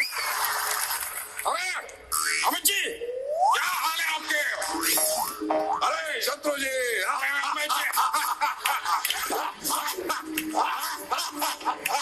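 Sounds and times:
comic boing pitch slides: 0:04.8 - 0:05.8.

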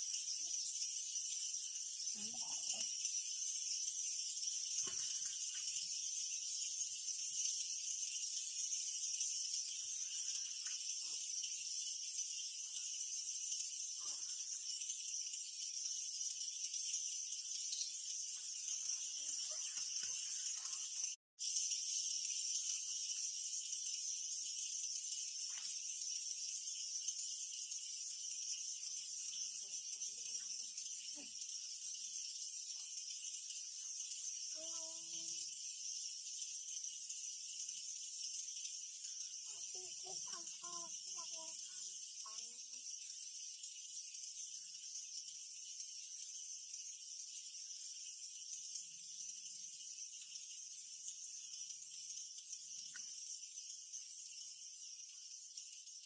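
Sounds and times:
insect chorus buzzing: 0:00.0 - 0:56.0.

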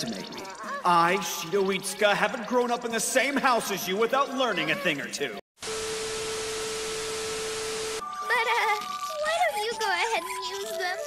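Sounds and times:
girl's high wavering voice: 0:00.4 - 0:00.9, 0:08.2 - 0:11.0
steady test tone: 0:05.6 - 0:08.2
television static hiss: 0:05.6 - 0:09.0.

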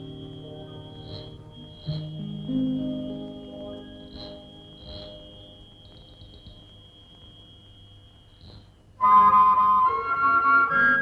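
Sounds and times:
film music: 0:00.0 - 0:06.7, 0:09.0 - 0:11.0
faint chirps: 0:00.0 - 0:09.0.

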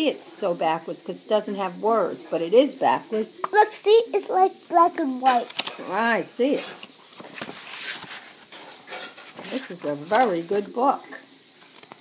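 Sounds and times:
paper pages turning: 0:05.3 - 0:05.9, 0:06.7 - 0:10.5, 0:11.6 - 0:12.0.

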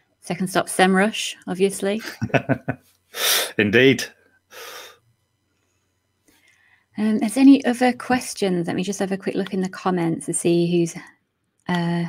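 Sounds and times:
person laughing: 0:02.0 - 0:02.8
short breath: 0:03.2 - 0:03.6, 0:04.5 - 0:05.0, 0:06.3 - 0:06.9.

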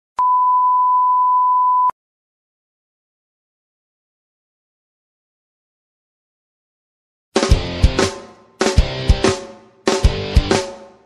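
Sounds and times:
high electronic beep: 0:00.2 - 0:01.9.

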